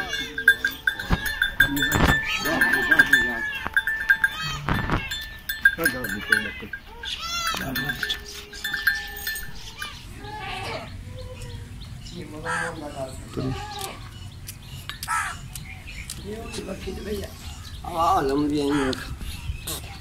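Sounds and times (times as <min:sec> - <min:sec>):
goats bleating: 0:00.0 - 0:11.0, 0:13.3 - 0:14.1.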